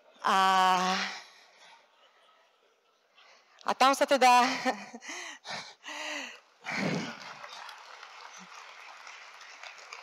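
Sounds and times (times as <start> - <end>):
faint audience clapping: 6.6 - 10.0.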